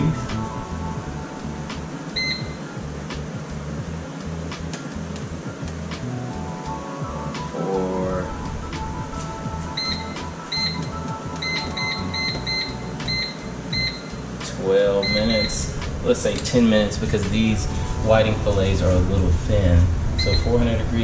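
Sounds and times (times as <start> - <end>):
background music: 0.0 - 21.0
low steady hum: 0.0 - 21.0
short high beeps: 2.2 - 2.6, 9.7 - 14.2, 15.0 - 15.7, 20.2 - 20.5.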